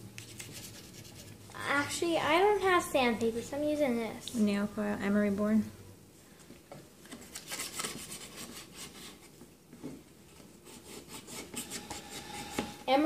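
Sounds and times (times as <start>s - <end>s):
emery board scratching wood: 0.2s - 1.4s, 7.3s - 9.4s, 10.6s - 12.9s.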